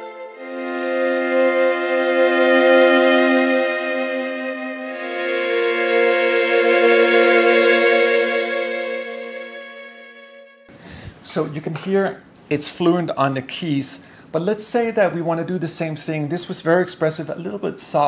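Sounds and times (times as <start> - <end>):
solo violin held notes: 0.0 - 10.8.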